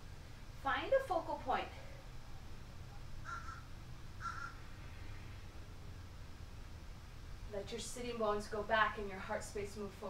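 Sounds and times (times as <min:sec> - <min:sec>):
steady low hum: 0:00.0 - 0:10.0
bird calling: 0:03.2 - 0:04.7.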